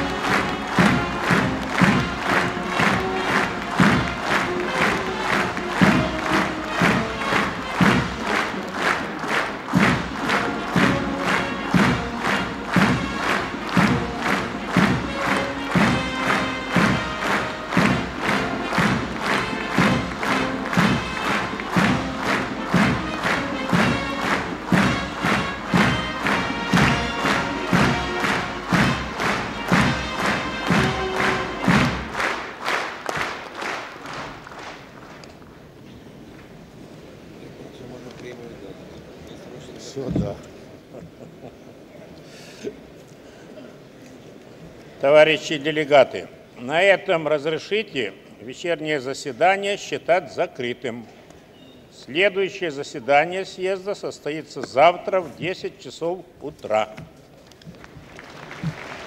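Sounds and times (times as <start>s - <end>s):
music: 0.0s - 32.9s
crowd clapping in unison: 0.0s - 35.8s, 56.6s - 59.0s.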